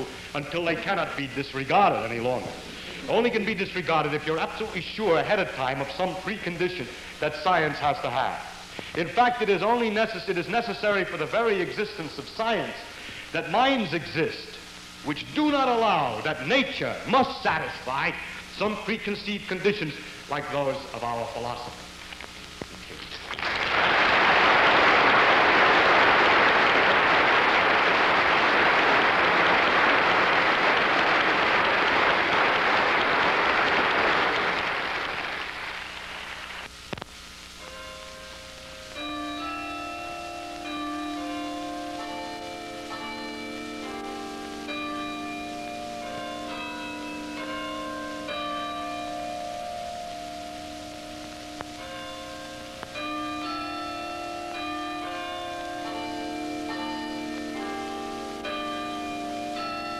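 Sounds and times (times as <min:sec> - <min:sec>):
audience applauding: 0:23.0 - 0:36.7
tuned bells melody: 0:37.6 - 0:59.9.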